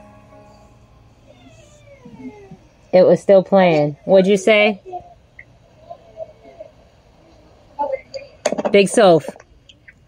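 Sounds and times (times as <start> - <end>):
faint garbled phone voice: 3.8 - 8.4.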